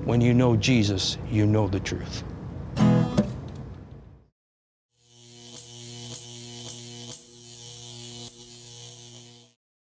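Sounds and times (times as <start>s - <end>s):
electrical hum and buzz: 5.0s - 9.6s.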